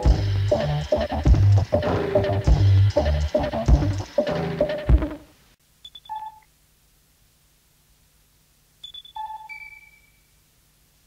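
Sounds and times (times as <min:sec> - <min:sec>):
faint tape hiss: 0:00.0 - 0:11.0
high electronic beeping tones: 0:05.9 - 0:06.4, 0:08.8 - 0:10.2.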